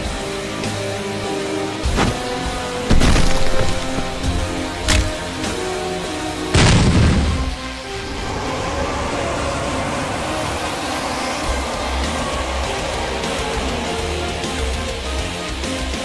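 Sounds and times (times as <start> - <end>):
background music: 0.0 - 16.0
heavy boom sound effect: 6.6 - 7.6.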